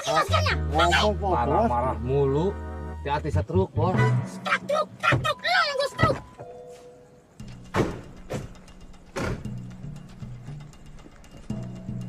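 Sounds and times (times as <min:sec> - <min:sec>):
background music: 0:00.0 - 0:12.0
car doors shutting: 0:07.4 - 0:09.6.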